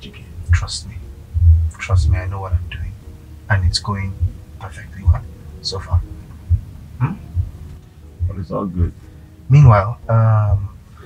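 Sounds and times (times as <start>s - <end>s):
soft music with bass thumps: 0.0s - 11.0s.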